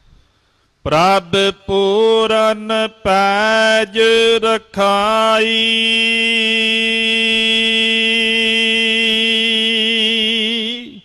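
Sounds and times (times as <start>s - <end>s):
man chanting: 0.9s - 11.0s.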